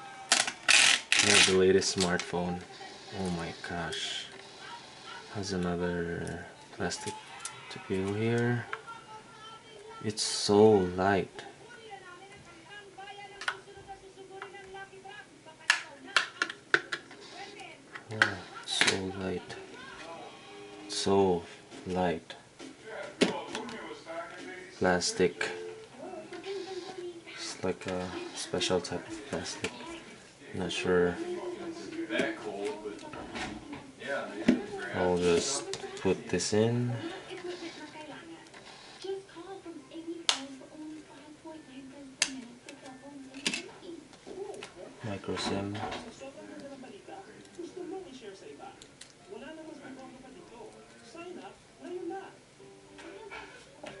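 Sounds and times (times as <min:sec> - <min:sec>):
faint wavering voice-like hum: 0:22.3 - 0:48.8.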